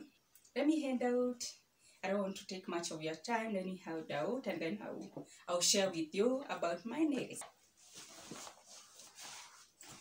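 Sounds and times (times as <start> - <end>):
fabric bag rustling: 7.8 - 10.0.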